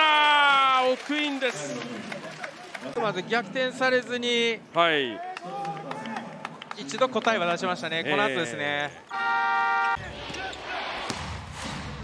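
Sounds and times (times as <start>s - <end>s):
indoor arena background: 0.0s - 12.0s.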